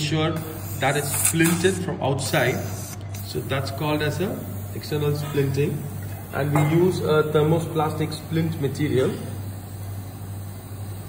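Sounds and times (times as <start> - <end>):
equipment low hum: 0.0 - 11.0.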